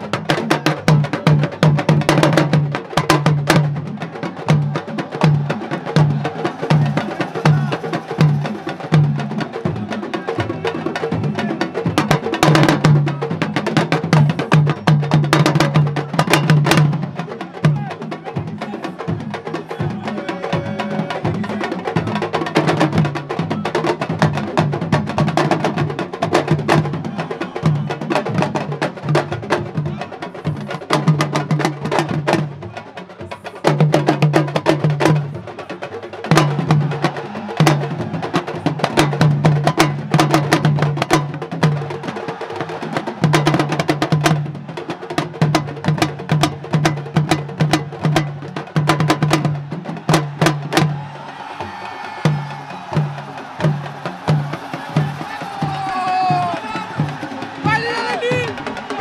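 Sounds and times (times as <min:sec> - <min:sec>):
drums played fast: 0:00.0 - 0:59.0.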